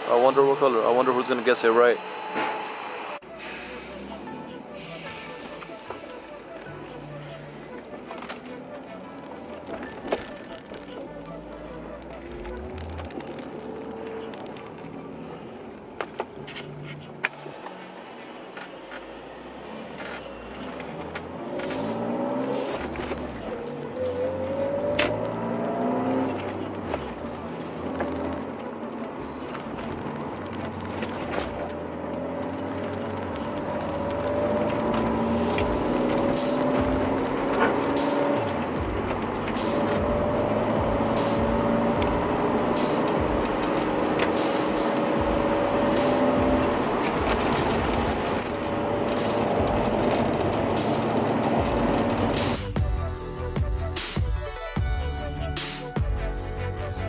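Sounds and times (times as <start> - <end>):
car engine accelerating through gears: 0.0 - 53.1
road noise: 0.0 - 57.0.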